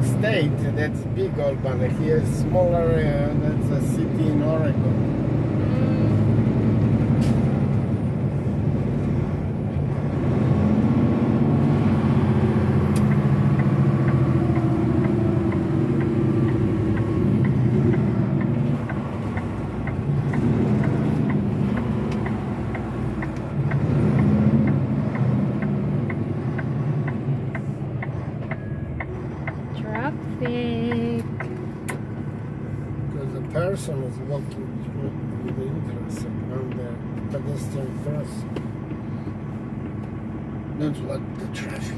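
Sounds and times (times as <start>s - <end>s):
road and engine noise in car: 0.0s - 41.9s
light regular ticking: 12.9s - 32.1s.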